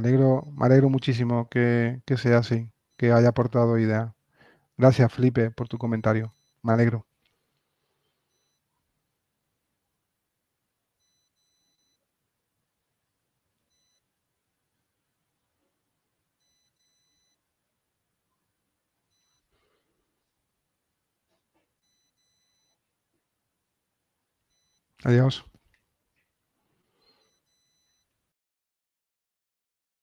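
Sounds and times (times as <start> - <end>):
faint high-pitched electronic beeps: 4.9 - 7.0, 11.0 - 12.2, 13.6 - 14.2, 16.4 - 17.5, 21.8 - 22.9.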